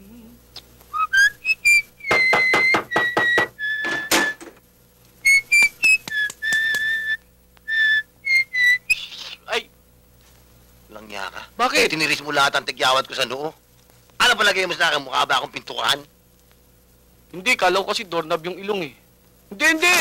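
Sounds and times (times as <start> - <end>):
man whistling a tune: 0.9 - 4.4, 5.2 - 9.0.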